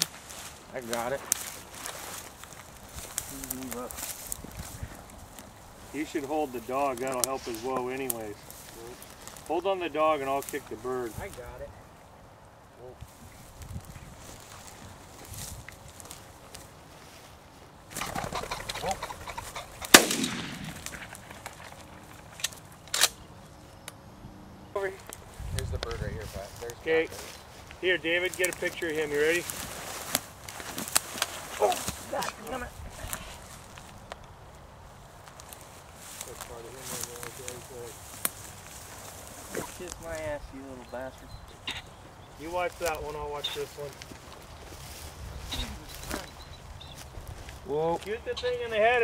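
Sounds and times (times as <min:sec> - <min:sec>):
footsteps in dry grass: 0:00.0 - 0:23.6, 0:24.8 - 0:49.0
pheasant wings flurry: 0:17.9 - 0:22.4
shotgun shots: 0:19.9 - 0:21.1
faint men's voices: 0:36.1 - 0:46.4.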